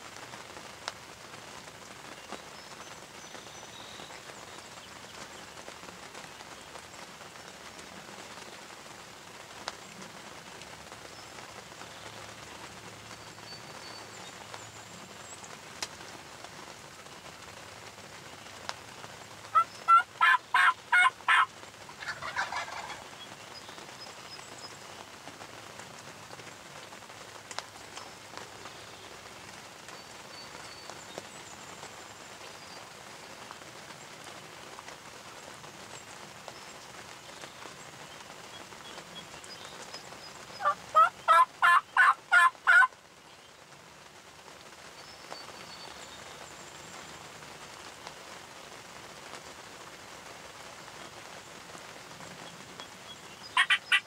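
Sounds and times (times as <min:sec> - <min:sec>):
faint blurred bird call: 0:02.2 - 0:05.6, 0:52.2 - 0:54.0
wild turkey gobbling: 0:19.5 - 0:23.2, 0:40.6 - 0:42.9, 0:53.4 - 0:54.0.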